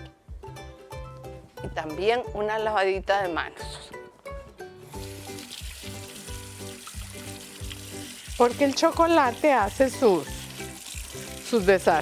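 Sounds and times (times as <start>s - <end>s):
background music: 0.0s - 12.0s
hands washing under water: 5.0s - 12.0s.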